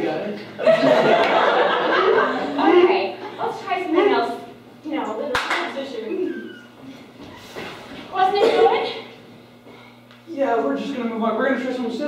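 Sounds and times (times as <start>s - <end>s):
people talking: 8.1s - 9.1s.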